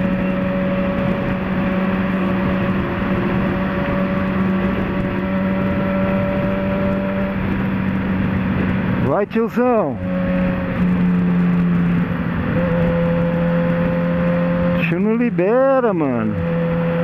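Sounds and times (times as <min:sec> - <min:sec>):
motorcycle engine cruising: 0:00.0 - 0:17.0
wind and road noise: 0:00.0 - 0:17.0.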